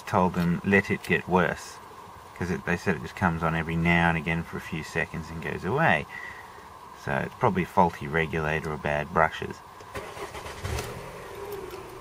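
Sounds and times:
car engine starting and idling: 9.8s - 12.0s.

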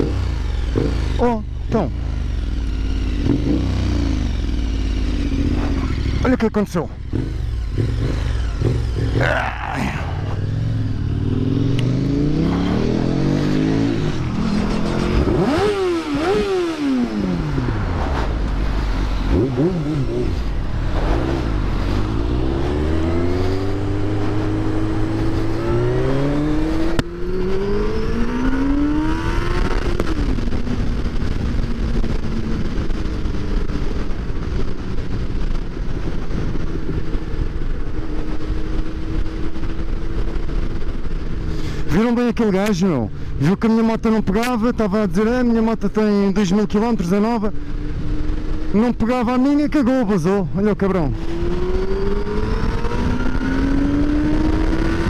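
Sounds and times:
motorcycle engine revving: 0.0s - 42.4s, 43.5s - 55.0s
road and wind noise: 0.0s - 55.0s.

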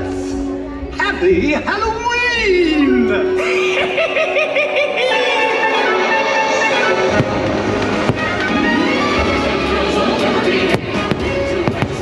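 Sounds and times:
show music: 0.0s - 12.0s
firework crack: 7.1s - 9.3s, 10.6s - 12.0s.

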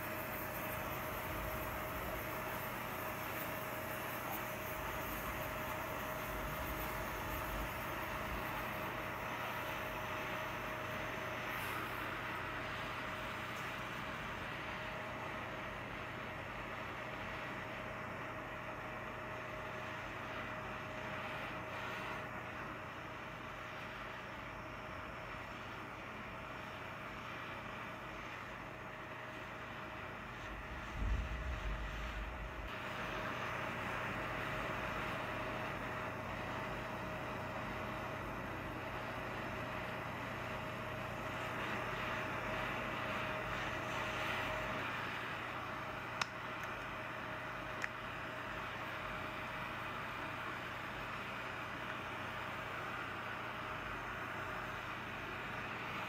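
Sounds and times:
gas torch flame hissing: 0.0s - 56.0s.

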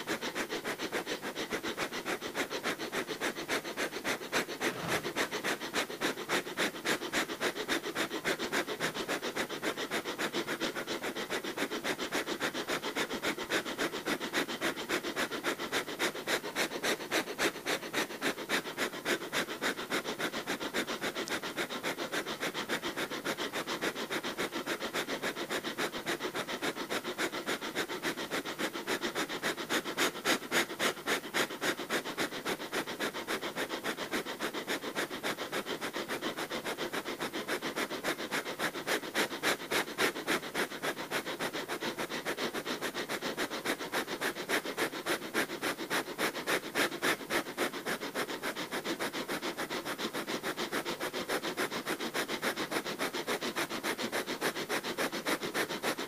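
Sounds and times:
rapid forceful nose breathing: 0.0s - 56.0s.

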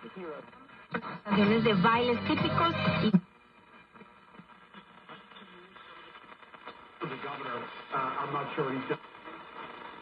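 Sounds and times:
faint radio hiss: 0.0s - 10.0s
radio broadcast: 0.0s - 10.0s.

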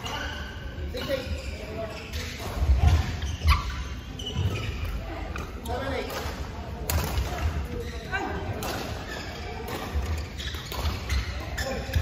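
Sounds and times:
shoes squeaking on court floor: 0.0s - 12.0s
rackets hitting shuttlecock: 4.4s - 7.8s, 8.5s - 12.0s.

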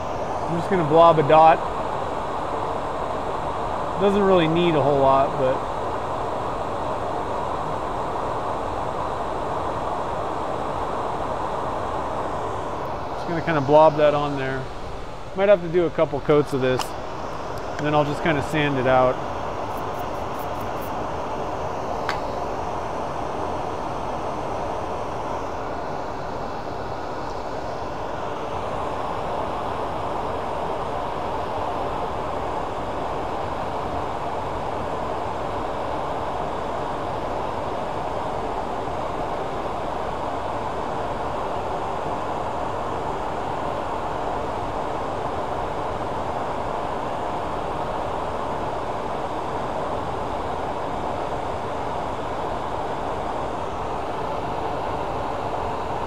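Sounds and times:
dust collector running: 0.0s - 56.0s.

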